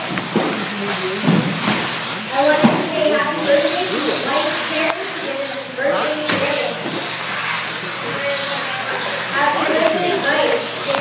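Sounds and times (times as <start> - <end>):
radio-controlled car motors: 0.0 - 11.0.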